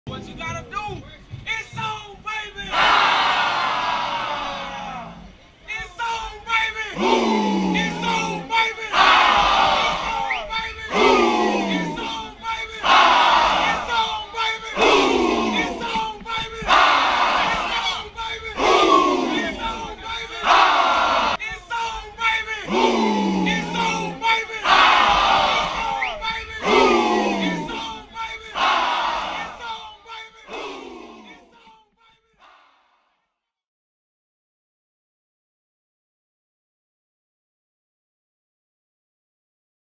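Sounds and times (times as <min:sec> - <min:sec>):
players shouting in unison: 0:02.6 - 0:05.3, 0:06.1 - 0:31.7.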